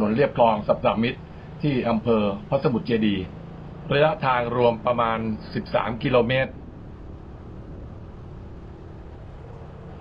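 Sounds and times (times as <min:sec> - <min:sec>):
faint hum: 0:00.0 - 0:10.0
steady low rumble: 0:00.0 - 0:10.0.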